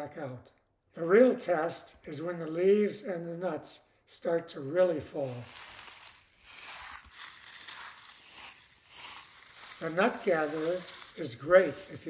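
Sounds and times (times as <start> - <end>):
dry leaves rustling and crackling: 5.2 - 12.0.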